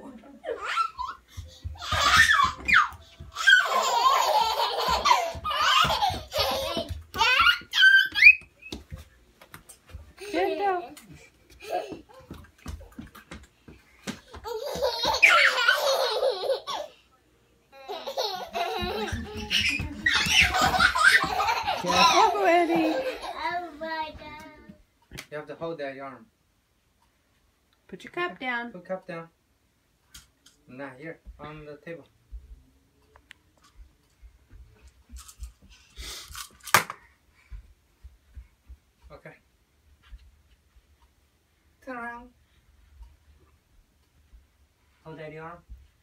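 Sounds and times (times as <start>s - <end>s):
toddlers laughing and squealing: 0.4s - 8.7s, 14.4s - 17.0s, 17.8s - 23.7s.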